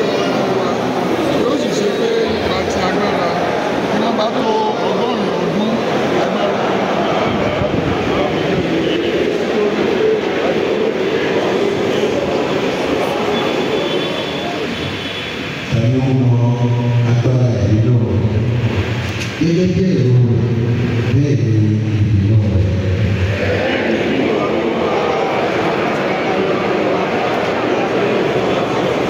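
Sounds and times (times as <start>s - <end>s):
congregation voices: 0.0s - 29.0s.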